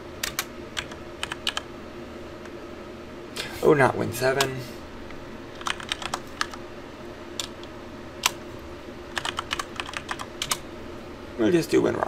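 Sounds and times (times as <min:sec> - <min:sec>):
faint steady hum: 0:00.0 - 0:12.0
typing on computer keyboard: 0:00.2 - 0:01.6, 0:05.6 - 0:06.6, 0:09.1 - 0:10.6.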